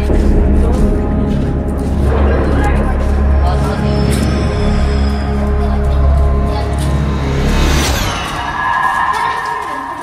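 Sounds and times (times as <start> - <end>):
background music with deep bass: 0.0 - 10.0.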